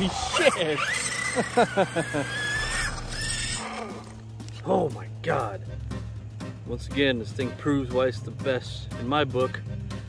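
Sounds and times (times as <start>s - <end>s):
man laughing and exclaiming: 0.0s - 3.0s.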